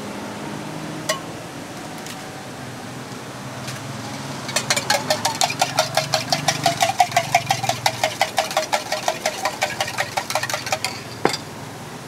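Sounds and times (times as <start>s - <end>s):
fork beating eggs in metal mug: 4.1s - 11.3s.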